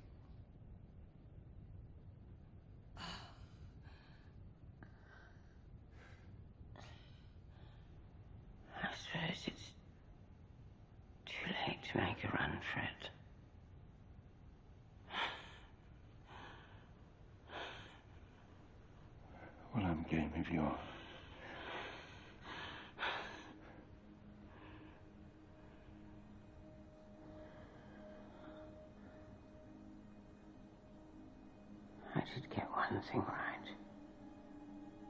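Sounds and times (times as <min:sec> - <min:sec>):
faint low rumble: 0:00.0 - 0:35.0
person whispering: 0:08.6 - 0:09.8, 0:11.2 - 0:13.2, 0:19.5 - 0:21.0, 0:32.0 - 0:34.0
woman's faint laboured breathing: 0:15.0 - 0:19.2, 0:21.0 - 0:29.7.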